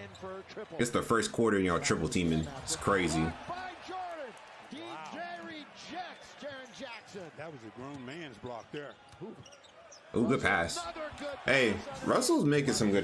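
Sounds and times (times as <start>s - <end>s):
commentator talking: 0.0s - 3.9s, 10.2s - 13.0s.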